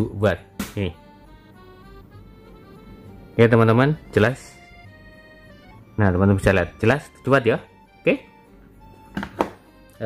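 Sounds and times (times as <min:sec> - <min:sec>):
plastic knocks: 0:09.1 - 0:09.6.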